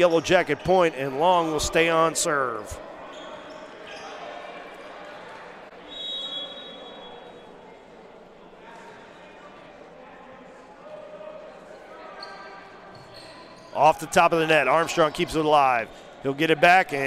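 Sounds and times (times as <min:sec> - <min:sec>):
crowd chatter echoing in hall: 0:00.0 - 0:17.0
referee's whistle blast: 0:05.8 - 0:07.2.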